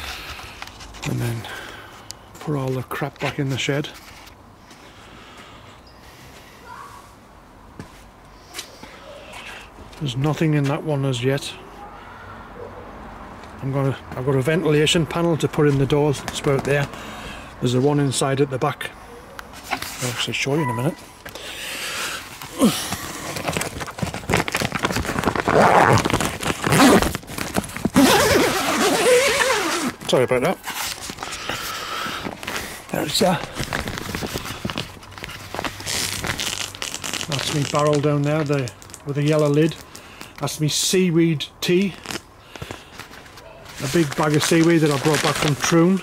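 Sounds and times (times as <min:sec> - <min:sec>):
plastic sheeting crackling on microphone: 0:22.2 - 0:40.6, 0:41.8 - 0:46.0.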